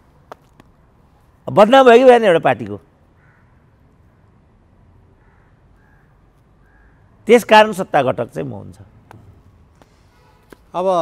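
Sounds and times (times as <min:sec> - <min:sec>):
faint bird calls: 0:03.1 - 0:04.4, 0:05.1 - 0:07.2.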